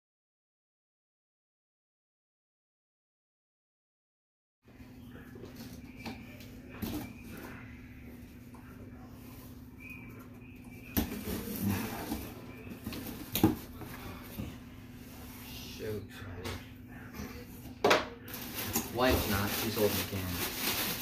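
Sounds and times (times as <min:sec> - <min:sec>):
steady low hum: 0:04.7 - 0:20.8.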